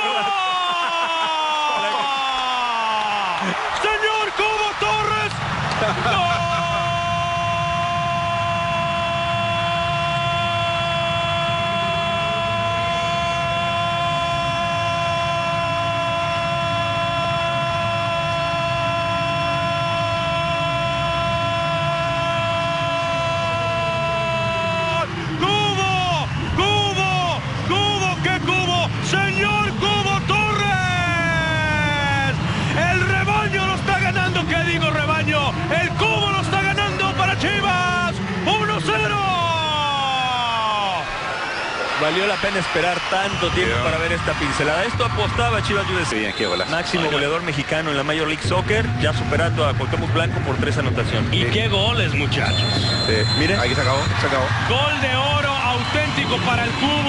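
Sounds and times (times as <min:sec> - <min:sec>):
commentator shouting: 0:00.0 - 0:41.1.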